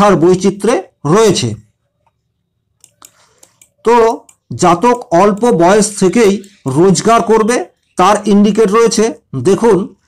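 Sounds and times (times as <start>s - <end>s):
man speaking: 0.0s - 1.7s, 3.8s - 10.0s.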